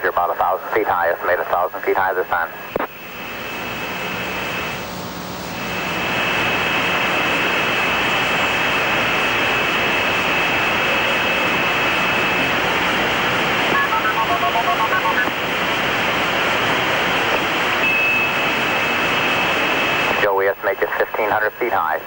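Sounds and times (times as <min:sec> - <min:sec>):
radio channel hiss: 0:00.0 - 0:22.0
thin steady high tone: 0:13.7 - 0:15.3
touch-tone dialing beeps: 0:13.7 - 0:15.3.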